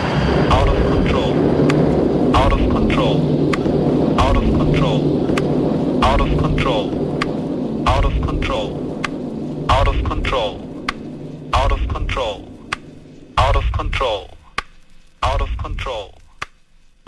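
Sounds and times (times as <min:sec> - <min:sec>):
pulsing low tone: 0:00.0 - 0:14.5
sweeping pitch-glide effects: 0:00.0 - 0:14.5.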